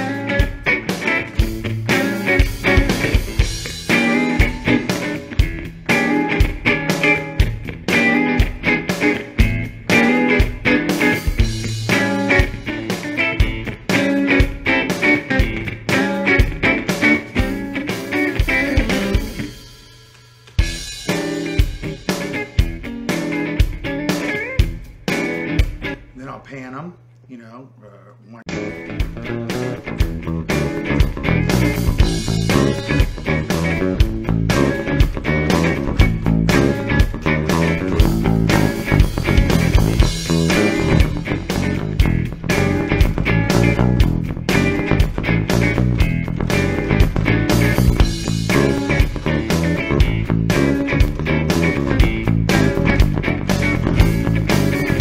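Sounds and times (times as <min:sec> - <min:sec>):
electric guitar playing: 0:00.0 - 0:26.2, 0:28.5 - 0:55.0
backing track with drums: 0:00.0 - 0:26.3, 0:28.5 - 0:55.0.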